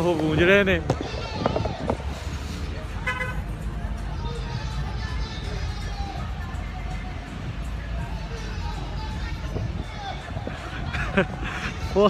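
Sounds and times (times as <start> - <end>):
street traffic rumble: 0.0 - 12.0
car horn toot: 3.0 - 3.4.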